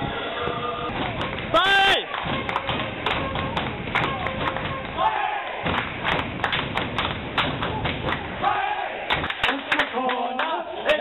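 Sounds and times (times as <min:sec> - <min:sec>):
crowd shouting: 0:00.0 - 0:06.2, 0:07.5 - 0:09.4
crowd clapping: 0:00.2 - 0:11.0
thuds: 0:00.4 - 0:01.6, 0:02.2 - 0:05.0, 0:05.6 - 0:08.3.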